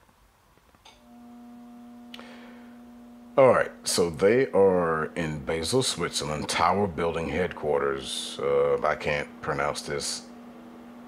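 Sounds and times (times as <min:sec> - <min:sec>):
steady low hum: 0:00.8 - 0:11.0.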